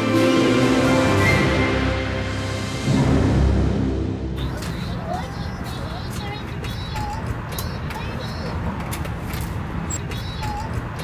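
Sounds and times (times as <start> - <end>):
toys chattering in electronic voices: 4.4 - 11.0.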